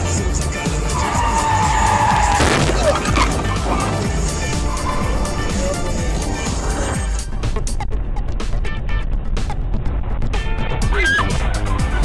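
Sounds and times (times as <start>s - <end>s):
car tyres squealing: 0.9s - 7.0s.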